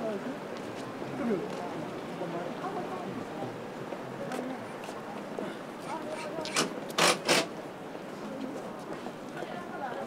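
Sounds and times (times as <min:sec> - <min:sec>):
passers-by talking: 0:00.0 - 0:10.0
street background noise: 0:00.0 - 0:10.0.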